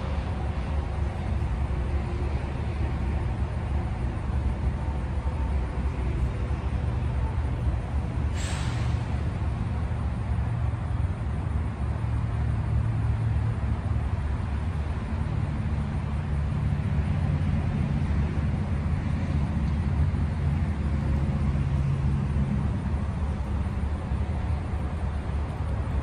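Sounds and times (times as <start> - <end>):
highway traffic rumble: 0.0 - 26.0
low engine hum: 0.0 - 26.0.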